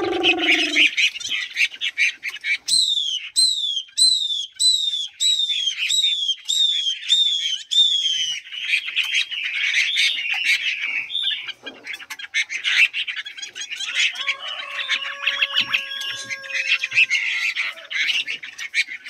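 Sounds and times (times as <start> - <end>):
songbirds chattering twitters: 0.0 - 19.0.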